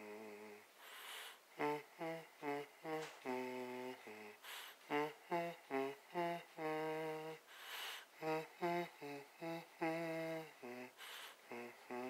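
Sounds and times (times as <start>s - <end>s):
person humming a melody: 0.0s - 0.7s, 1.5s - 12.0s.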